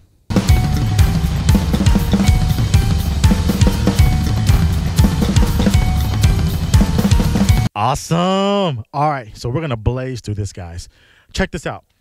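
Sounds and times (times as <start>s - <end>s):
cymbals: 0.3s - 7.7s
drum kit solo: 0.3s - 7.8s.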